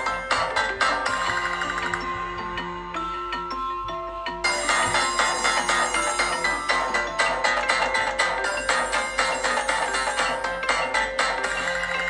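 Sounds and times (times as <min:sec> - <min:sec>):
busy ringtone with quick notes: 0:00.0 - 0:12.0
soft melodic ringtone: 0:00.0 - 0:12.0.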